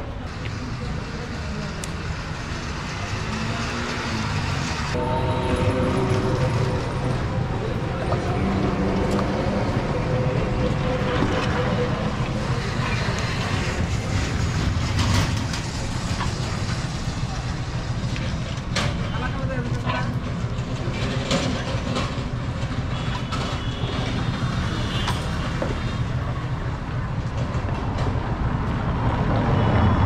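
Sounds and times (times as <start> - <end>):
low street rumble: 0.0 - 30.0
background voices: 2.5 - 14.6.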